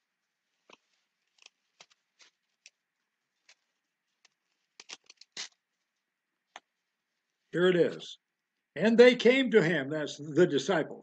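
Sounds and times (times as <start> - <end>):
paper pages turning: 0.5 - 5.6.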